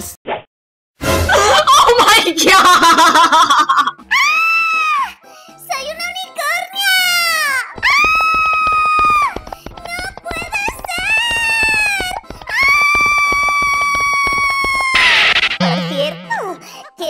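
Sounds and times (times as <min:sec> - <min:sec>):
background music: 0:01.0 - 0:17.0.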